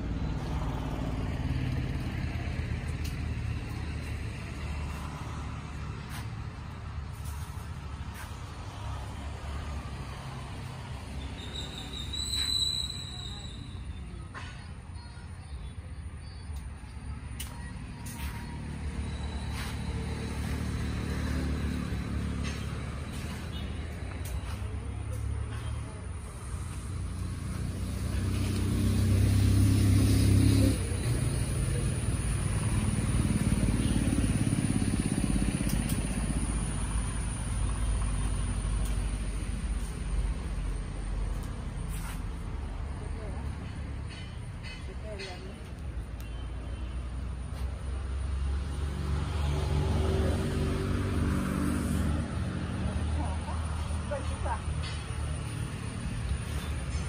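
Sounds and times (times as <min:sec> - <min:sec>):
passing motor vehicles rumbling: 0:00.0 - 0:57.0.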